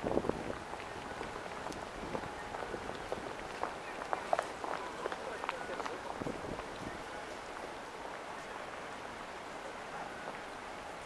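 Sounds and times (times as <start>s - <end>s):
footsteps: 0.0s - 9.4s
indistinct voices talking: 2.1s - 8.9s.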